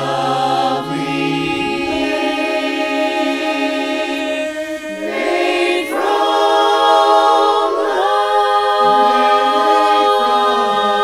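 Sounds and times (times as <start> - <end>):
a cappella chorus singing: 0.0 - 11.0.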